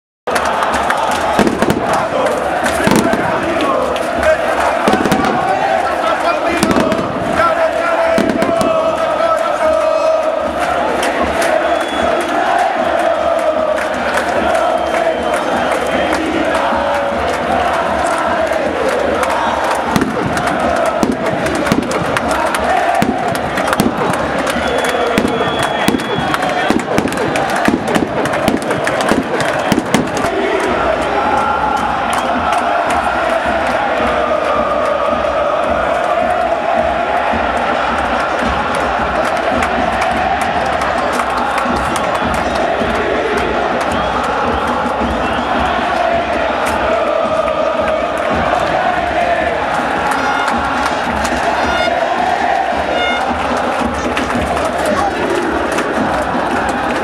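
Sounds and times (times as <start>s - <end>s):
crowd singing a chant: 0.3s - 57.0s
sharp pops and bangs: 1.2s - 2.1s, 2.7s - 3.7s, 19.9s - 22.3s, 22.9s - 30.3s.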